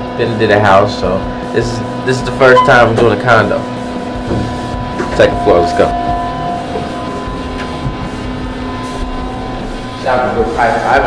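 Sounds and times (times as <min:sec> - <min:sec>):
constant hum: 0:00.0 - 0:11.0
elevator car rumbling: 0:02.4 - 0:11.0.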